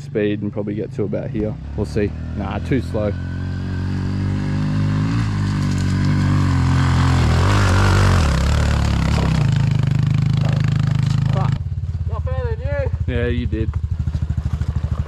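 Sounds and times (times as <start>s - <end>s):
dirt bike engine under load: 4.0s - 11.6s.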